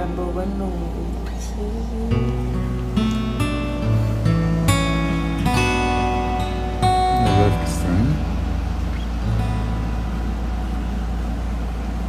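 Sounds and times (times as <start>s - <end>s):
guitar tune: 0.0s - 12.0s
steady low hum: 0.0s - 12.0s.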